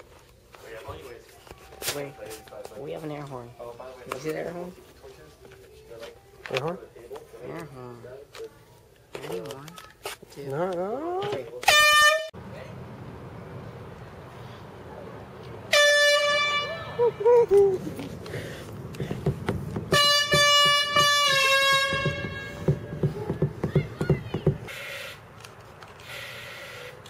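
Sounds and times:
air horn blasts: 11.6s - 12.4s, 15.7s - 17.3s, 19.9s - 23.0s.

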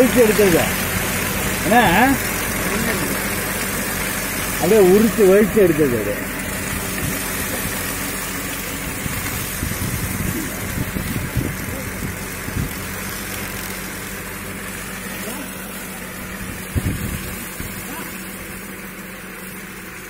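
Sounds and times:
tractor engine running: 0.0s - 20.0s.

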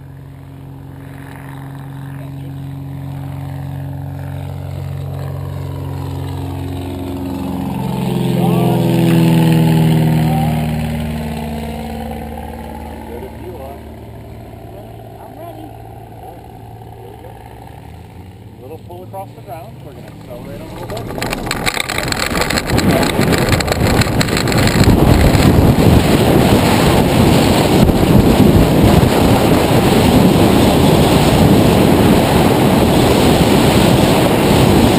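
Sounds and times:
small plane engine passing by: 0.0s - 34.9s.

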